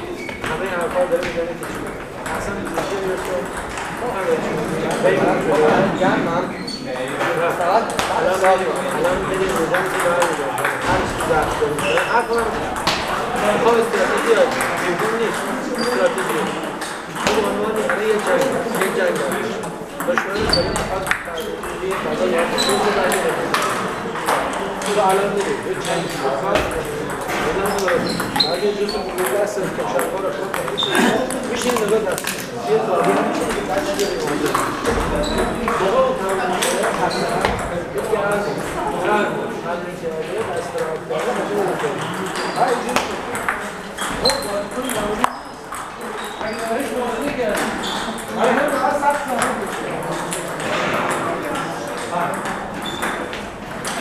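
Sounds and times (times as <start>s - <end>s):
hall of voices chattering: 0.0s - 54.0s
table tennis balls clicking: 0.2s - 6.0s, 7.0s - 39.0s, 40.3s - 54.0s.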